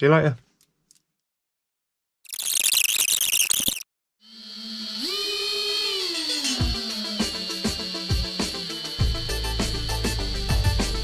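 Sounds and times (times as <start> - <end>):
music with rising tone: 6.3 - 11.0.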